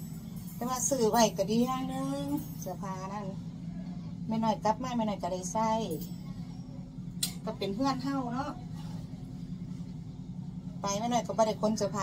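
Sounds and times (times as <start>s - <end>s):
steady low motor hum: 0.0s - 12.0s
woman's voice: 0.6s - 3.5s, 4.2s - 6.2s, 7.3s - 8.8s, 10.8s - 12.0s.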